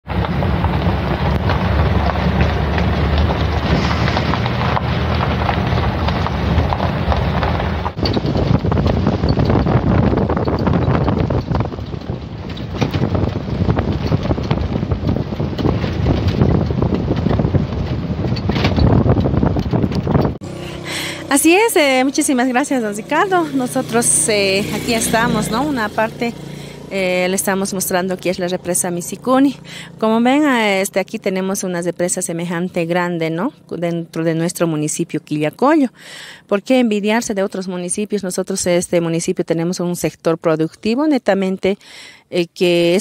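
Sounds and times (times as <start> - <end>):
wind noise on microphone: 0.0 - 30.8.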